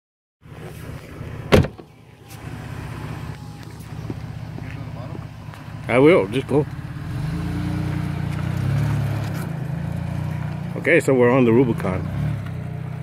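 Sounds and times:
pickup engine idling: 0:00.5 - 0:08.9
car door shutting: 0:00.6 - 0:05.3.

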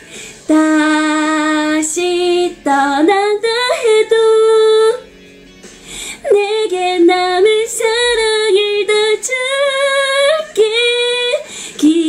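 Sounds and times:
quick breaths: 0:00.0 - 0:00.5, 0:05.7 - 0:06.2, 0:11.4 - 0:11.8
woman singing a ballad: 0:00.3 - 0:05.1, 0:06.0 - 0:12.0.

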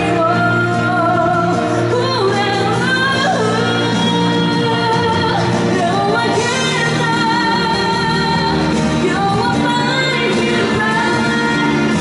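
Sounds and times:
pop accompaniment: 0:00.0 - 0:12.0
woman singing into microphone: 0:00.0 - 0:12.0.

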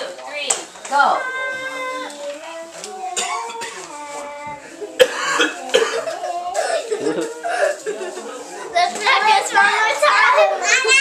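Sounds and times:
young girls' voices: 0:00.9 - 0:11.0.

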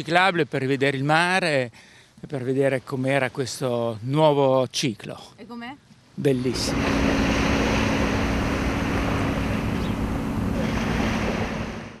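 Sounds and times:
wind: 0:00.0 - 0:12.0
sea noise: 0:06.2 - 0:12.0
boat engine drone: 0:06.3 - 0:12.0.

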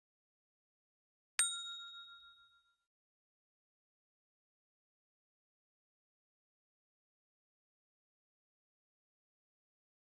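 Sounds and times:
bell ding: 0:01.4 - 0:02.9.

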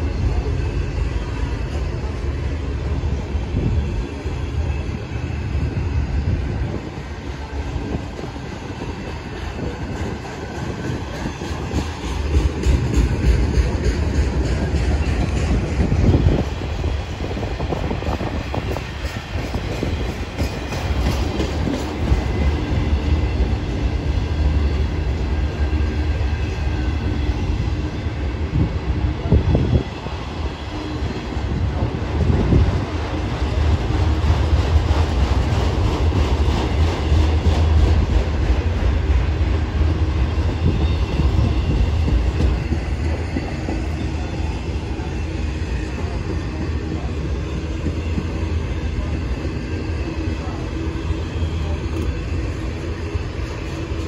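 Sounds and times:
clickety-clack of train trucks: 0:00.0 - 0:54.0
train wheels rumbling on rails: 0:00.0 - 0:54.0.

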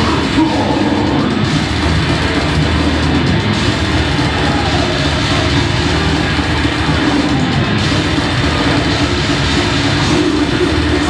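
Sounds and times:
distorted electric guitars: 0:00.0 - 0:11.0
fast drum beat: 0:00.0 - 0:11.0.

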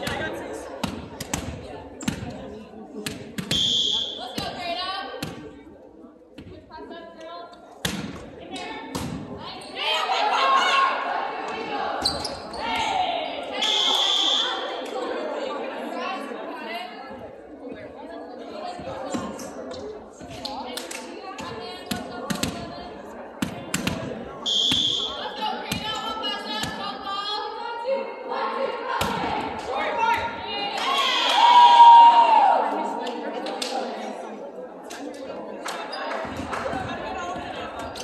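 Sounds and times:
voices chattering in gymnasium: 0:00.0 - 0:38.0.

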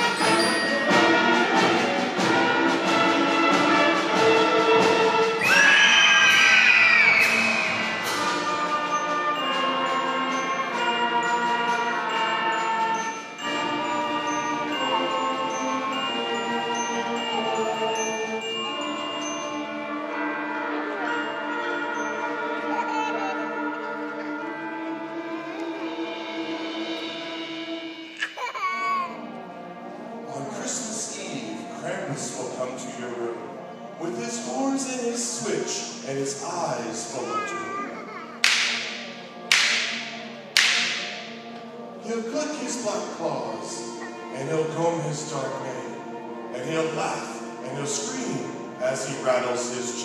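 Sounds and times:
loud sharp percussion hits: 0:00.0 - 0:11.8, 0:38.4 - 0:41.6
concert band holding chords: 0:00.0 - 0:28.3, 0:33.4 - 0:50.0.

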